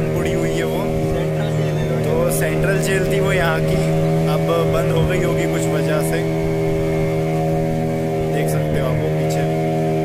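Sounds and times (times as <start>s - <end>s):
motorboat engine droning: 0.0s - 10.0s.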